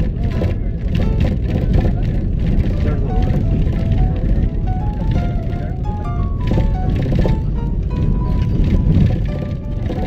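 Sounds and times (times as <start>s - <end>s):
vehicle road and wind noise: 0.0s - 10.0s.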